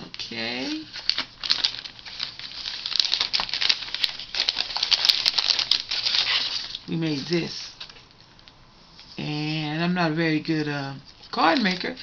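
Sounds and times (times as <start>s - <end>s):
plastic bag crinkling: 0.0s - 8.5s.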